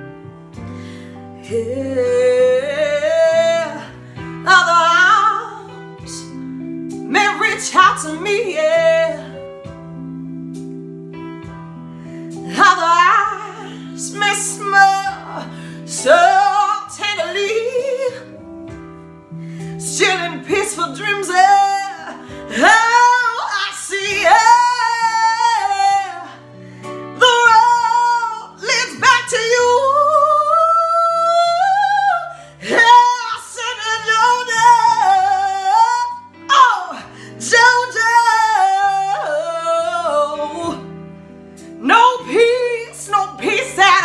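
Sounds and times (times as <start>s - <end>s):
woman singing a soul ballad: 0.0s - 44.0s.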